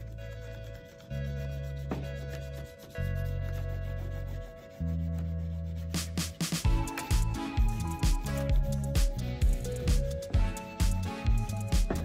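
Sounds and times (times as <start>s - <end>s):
crayon scratching on paper: 0.0s - 7.2s
background music with bass: 0.0s - 12.0s.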